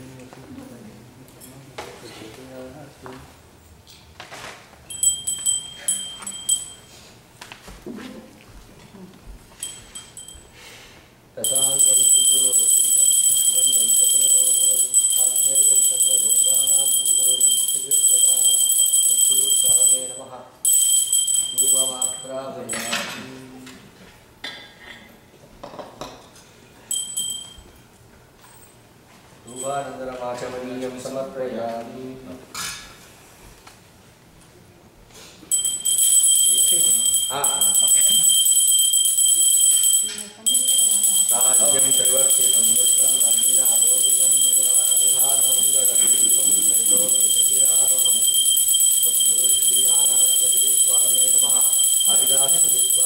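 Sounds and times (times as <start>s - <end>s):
hand bell ringing: 4.9s - 7.0s, 9.6s - 10.6s, 11.4s - 22.3s, 26.9s - 27.9s, 35.5s - 53.0s.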